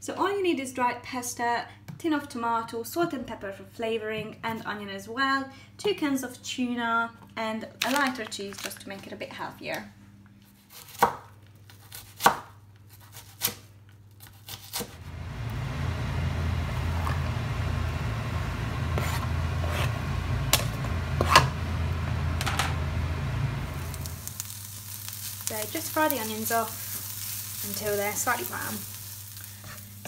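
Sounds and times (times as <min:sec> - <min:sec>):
low hum: 0:15.0 - 0:28.9
onion sizzling in a pan: 0:15.0 - 0:30.0.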